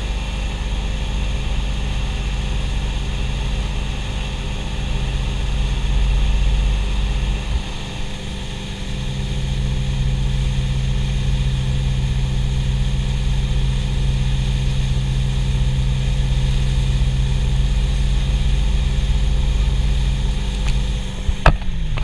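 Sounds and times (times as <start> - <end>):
boat engine running under load: 0.0 - 22.0
rushing wake water: 0.0 - 22.0.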